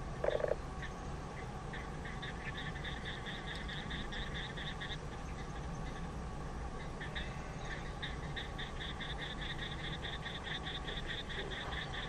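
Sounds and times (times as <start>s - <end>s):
low animal croak: 0.2s - 0.9s, 7.0s - 12.0s.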